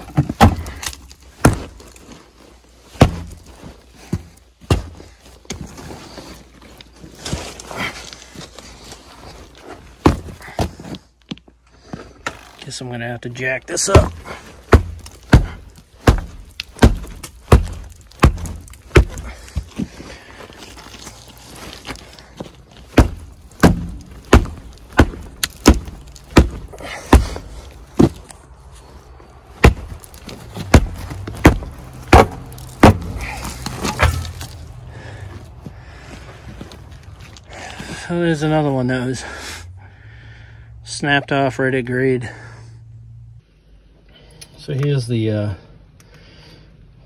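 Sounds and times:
boot kicking concrete: 0:00.0 - 0:02.2, 0:02.8 - 0:05.8, 0:13.8 - 0:28.4, 0:29.6 - 0:35.7.

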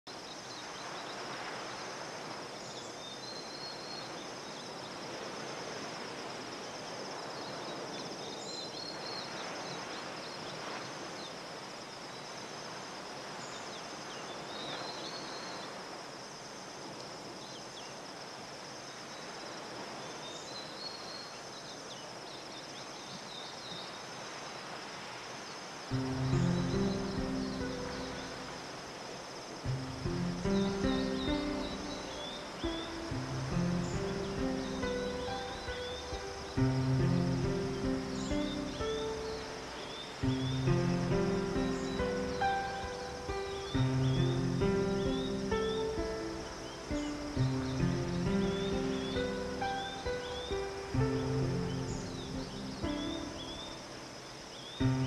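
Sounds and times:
high insect trill: 0:24.1 - 0:55.0
distant surf: 0:25.8 - 0:55.0
bird chirps: 0:25.9 - 0:28.7, 0:29.7 - 0:55.0.

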